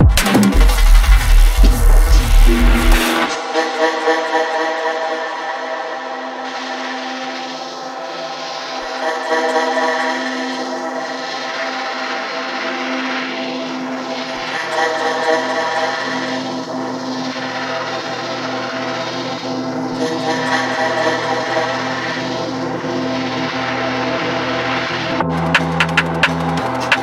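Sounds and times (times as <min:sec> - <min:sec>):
synth pads and drones: 0:00.0 - 0:27.0
airy noise swells: 0:00.6 - 0:27.0.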